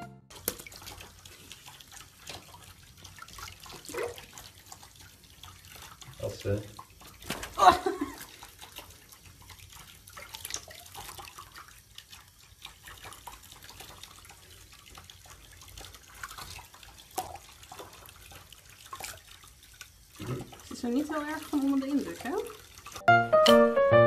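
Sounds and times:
water splashing in a tub: 0:00.3 - 0:23.1.

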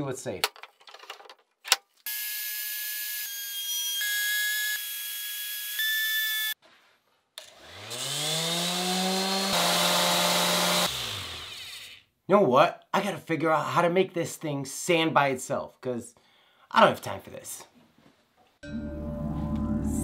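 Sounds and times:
router whining: 0:07.4 - 0:12.0
orbital sander humming: 0:07.5 - 0:12.0.

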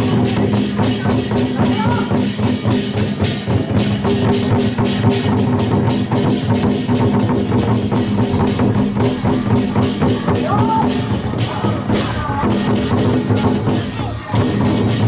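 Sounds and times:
barrel drums beaten fast: 0:00.0 - 0:15.0.

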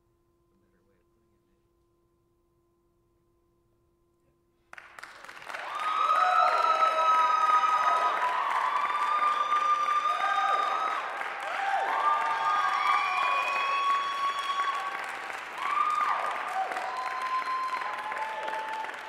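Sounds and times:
audience clapping: 0:04.7 - 0:19.0
audience cheering and whooping: 0:05.2 - 0:19.0.

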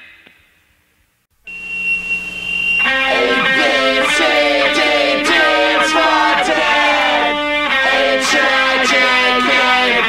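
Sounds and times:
high-pitched tone: 0:01.5 - 0:10.0
low drone: 0:01.6 - 0:10.0
punk rock band with electric guitars: 0:02.8 - 0:10.0.

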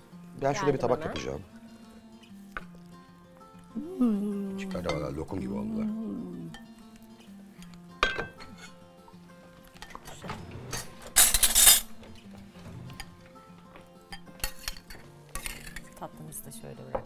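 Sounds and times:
quiet background music: 0:00.0 - 0:17.0
spoon clinking on porcelain bowl: 0:04.7 - 0:05.2.

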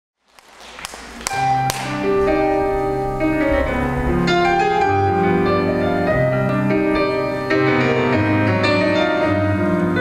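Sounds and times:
sustained piano and bass notes: 0:01.2 - 0:10.0.

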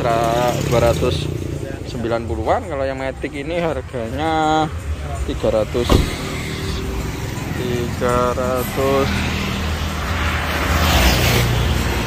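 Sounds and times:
passing vehicle rushing: 0:05.7 - 0:12.0.

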